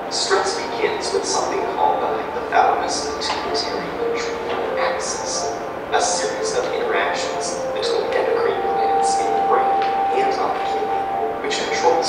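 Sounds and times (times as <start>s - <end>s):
voice over loudspeakers echoing: 0.0s - 12.0s.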